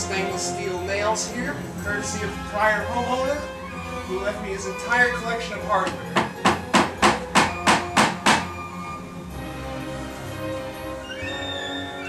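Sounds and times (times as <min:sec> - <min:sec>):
hammer driving nail: 0:05.9 - 0:08.6.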